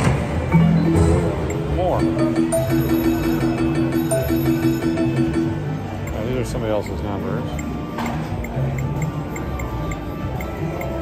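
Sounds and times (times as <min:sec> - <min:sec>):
slot machine music: 0:00.2 - 0:11.0.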